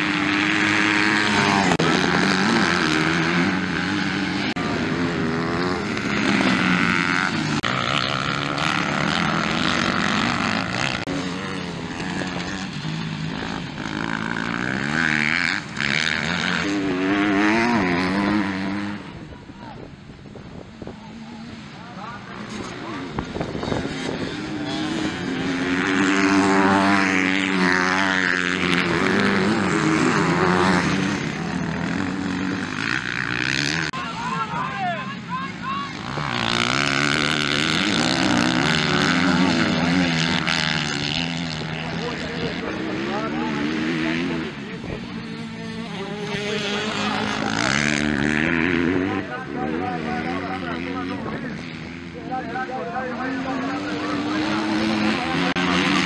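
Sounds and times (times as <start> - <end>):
motocross bike engines revving: 0.0 - 56.0.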